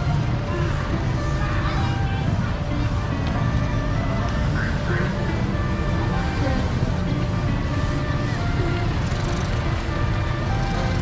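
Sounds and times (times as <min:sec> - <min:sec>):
music playing: 0:00.0 - 0:11.0
vehicle traffic rumble: 0:00.0 - 0:11.0
people talking: 0:04.3 - 0:05.4.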